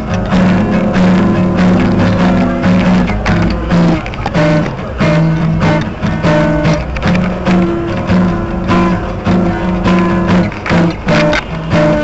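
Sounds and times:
guitar strumming chords: 0.0s - 12.0s.

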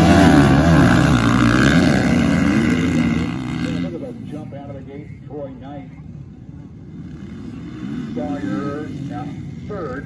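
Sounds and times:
distant motocross bike engines: 0.0s - 10.0s.

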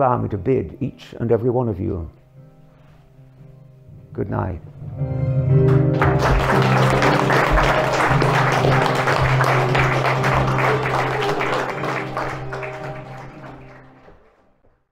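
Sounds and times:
background music with held notes: 0.0s - 14.7s
audience applauding: 5.7s - 14.8s.

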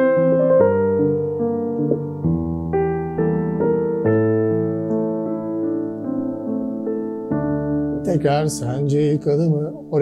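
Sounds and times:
piano arpeggio: 0.0s - 10.0s.

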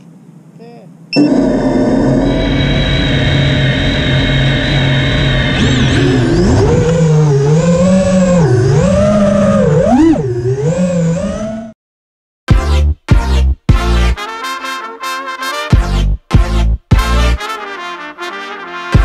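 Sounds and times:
model motor revving: 5.0s - 11.7s.

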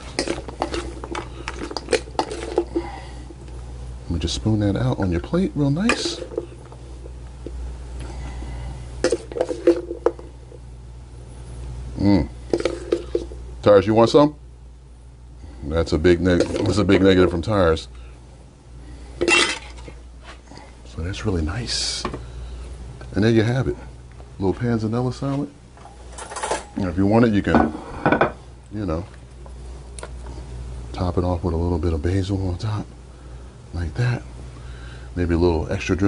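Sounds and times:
person speaking: 4.1s - 6.5s, 15.6s - 17.9s
utensils clinking on dishes: 26.1s - 26.8s.

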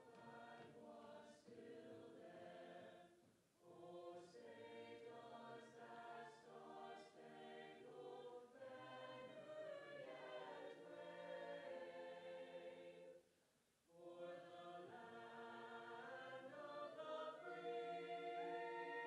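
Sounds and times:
faint choir singing: 0.0s - 13.3s, 13.9s - 19.0s.

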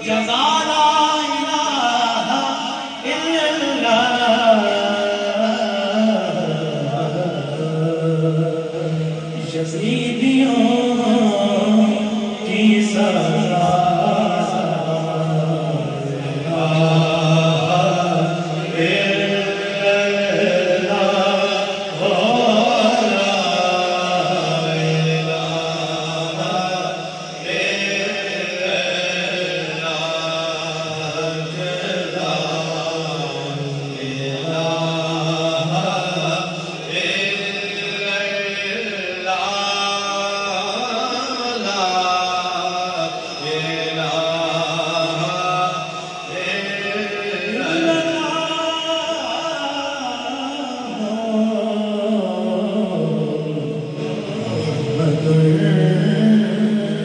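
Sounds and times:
man singing into a microphone: 0.0s - 57.0s.

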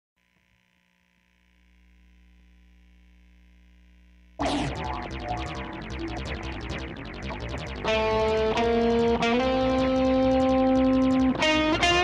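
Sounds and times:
low electrical hum: 0.2s - 7.1s.

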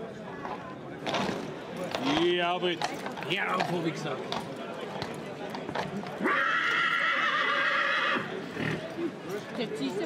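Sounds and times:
horse whinnying: 6.2s - 8.9s.

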